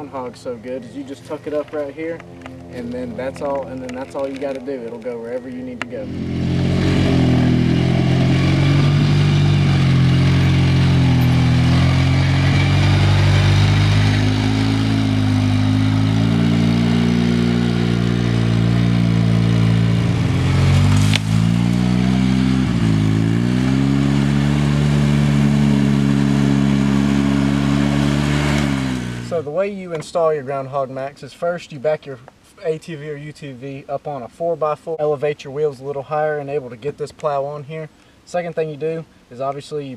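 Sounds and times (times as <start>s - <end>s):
atv engine running: 0.0s - 4.8s, 5.4s - 29.5s.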